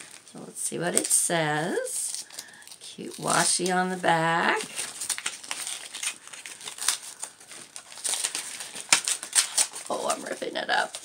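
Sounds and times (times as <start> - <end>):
paper envelope tearing: 2.1 - 11.0.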